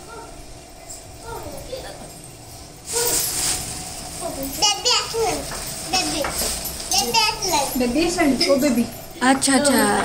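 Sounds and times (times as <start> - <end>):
plastic bag rustling: 2.8 - 9.2.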